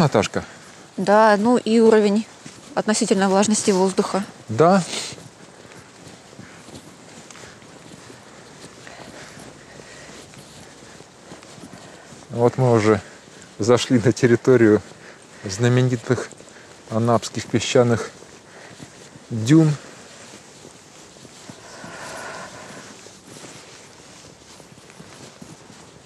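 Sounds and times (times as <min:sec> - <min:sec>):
footsteps in soft sand: 0:00.0 - 0:26.0.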